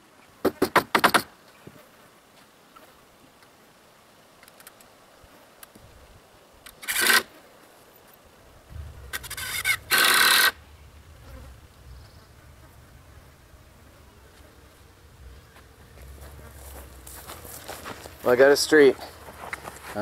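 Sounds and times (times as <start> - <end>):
cordless drill driving screws: 6.8 - 7.3, 9.2 - 10.6.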